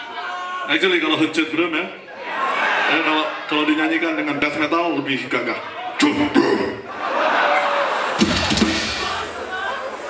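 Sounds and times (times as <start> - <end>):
large crowd noise: 0.0 - 10.0
bass drum thumps: 8.2 - 9.4
drum kit struck: 8.2 - 9.4.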